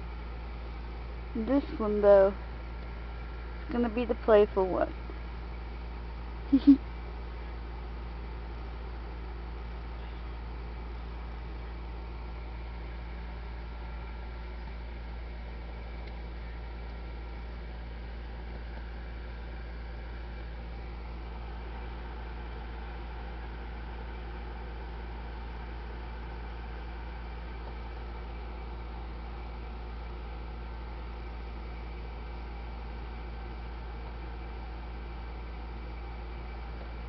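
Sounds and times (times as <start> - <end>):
low hum: 0.0 - 37.0.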